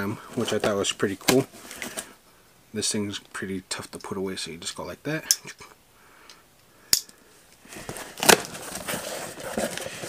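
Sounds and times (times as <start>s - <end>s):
paper rustling: 7.7s - 10.0s.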